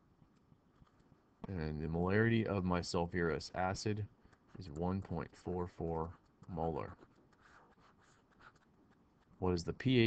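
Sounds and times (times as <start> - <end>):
stylus scratching on tablet screen: 3.6 - 10.0.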